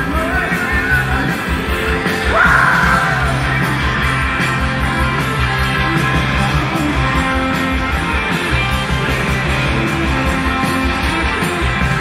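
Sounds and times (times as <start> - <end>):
rock band playing: 0.0 - 12.0
yelled vocal held high: 2.2 - 3.7.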